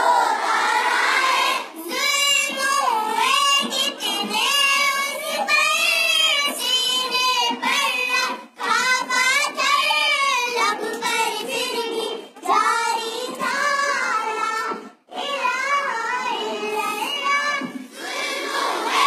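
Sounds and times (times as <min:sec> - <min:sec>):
child singing devotional song: 0:00.0 - 0:19.0.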